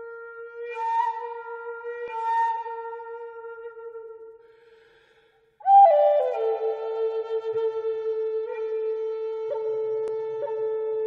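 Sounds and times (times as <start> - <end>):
flute-like wind instrument music: 0.0 - 11.0.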